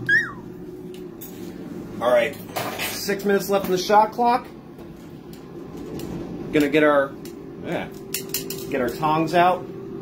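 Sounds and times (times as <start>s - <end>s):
man's high-pitched squeal: 0.0s - 0.4s
steady low hum: 0.0s - 10.0s.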